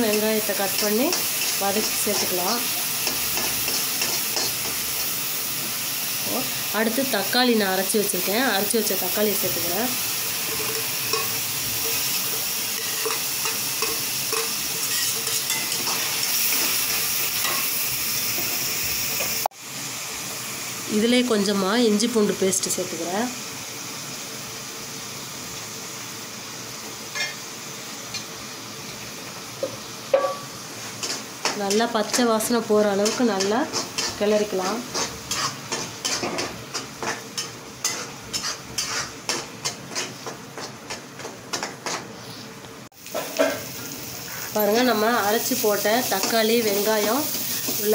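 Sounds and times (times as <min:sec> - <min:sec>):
vegetables sizzling in hot oil: 0:00.0 - 0:47.9
spoon stirring and scraping: 0:10.5 - 0:12.1, 0:12.8 - 0:16.7, 0:33.0 - 0:42.2.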